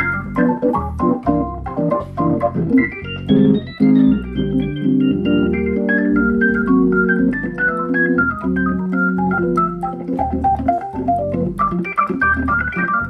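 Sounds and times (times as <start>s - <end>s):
organ held chords: 0.0s - 13.0s
organ melody notes: 0.0s - 13.0s.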